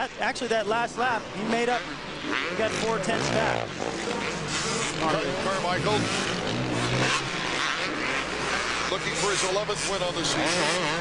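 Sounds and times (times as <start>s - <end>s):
dirt bike engines: 0.0s - 11.0s.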